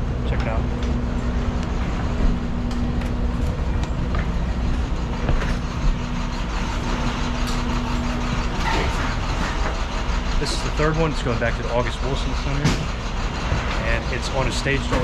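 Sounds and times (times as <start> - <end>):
motor rumble and hum: 0.0 - 15.0
scattered knocks: 12.4 - 13.8.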